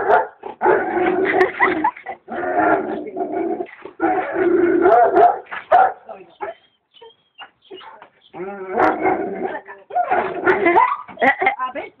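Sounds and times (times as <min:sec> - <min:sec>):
dog barking: 0:00.0 - 0:00.4, 0:04.9 - 0:06.6
woman laughing: 0:01.2 - 0:02.3, 0:10.6 - 0:11.9
dog whining: 0:06.4 - 0:09.0.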